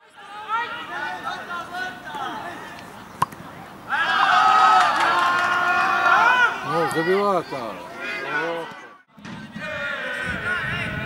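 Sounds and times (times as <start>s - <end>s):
men shouting loudly: 3.9s - 8.7s
men talking: 6.6s - 8.8s.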